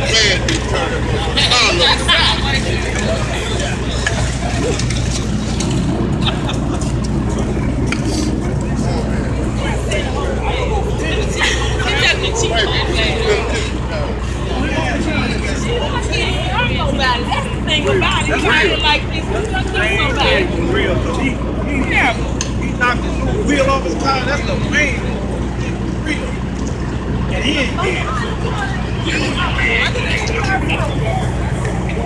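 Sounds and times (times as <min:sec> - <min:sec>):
idling vehicle engines: 0:00.0 - 0:32.0
people talking: 0:00.0 - 0:32.0.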